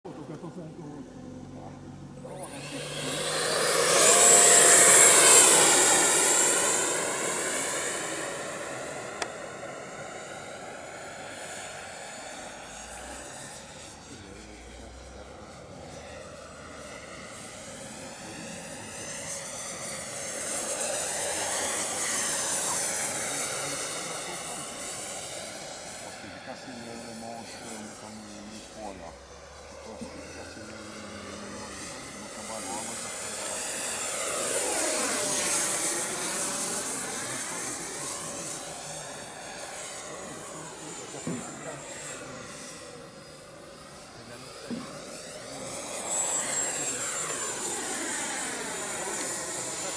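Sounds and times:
model jet fan whine passing: 0.1 - 49.9.

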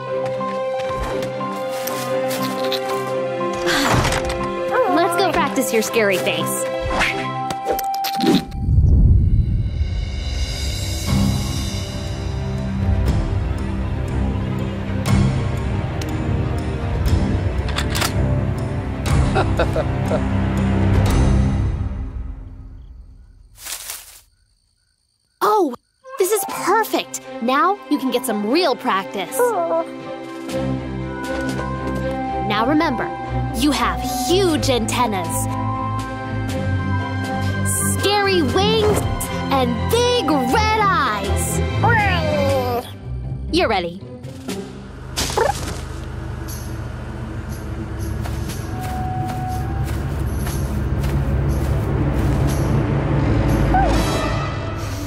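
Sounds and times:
low rumble: 8.5 - 11.6
night insects chirping: 21.5 - 27.5, 46.3 - 53.7
bush leaves rustling: 23.6 - 24.3.

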